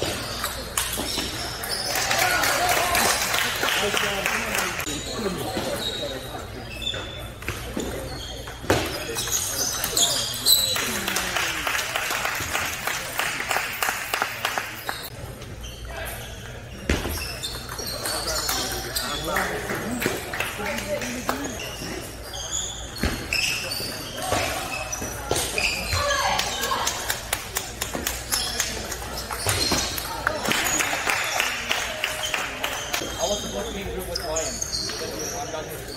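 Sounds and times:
people talking: 0.0s - 35.9s.

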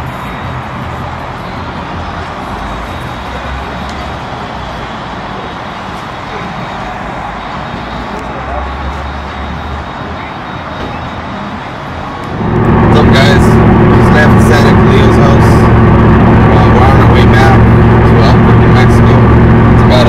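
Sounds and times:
traffic: 0.0s - 20.0s
car engine idling: 12.2s - 20.0s.

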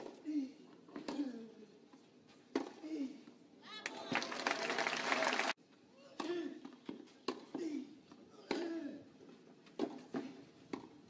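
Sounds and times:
spectators clapping: 3.8s - 5.6s.

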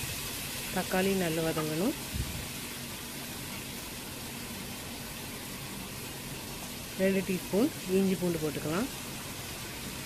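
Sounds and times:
spices frying in oil: 0.0s - 10.0s.

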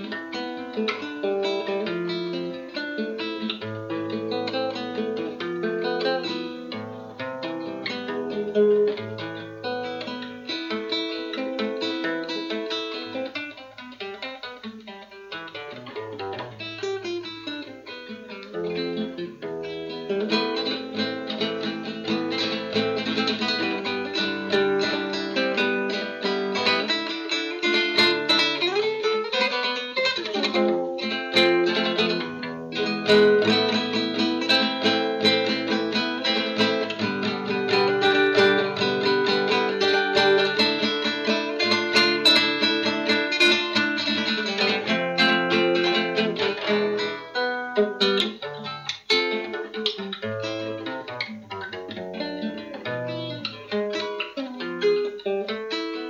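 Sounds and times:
acoustic guitar music: 0.0s - 56.0s.

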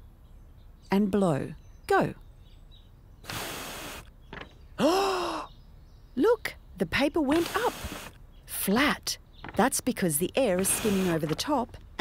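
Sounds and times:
person blowing breath: 3.3s - 4.1s.

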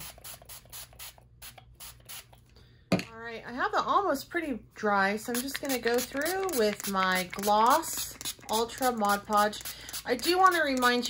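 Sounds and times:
spray bottle hissing sprays: 5.3s - 11.0s.

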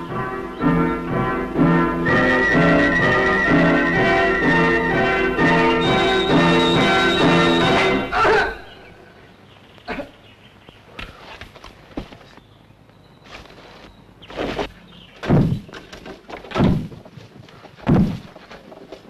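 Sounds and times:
thumps and scuffs of climbing: 10.7s - 12.6s, 13.2s - 19.0s.

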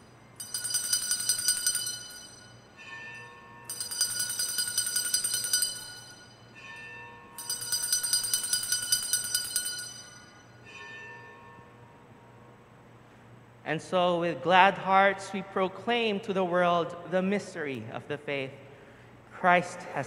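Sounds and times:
altar bells jingling: 0.0s - 11.6s
soft low ringing tone: 0.0s - 13.5s.

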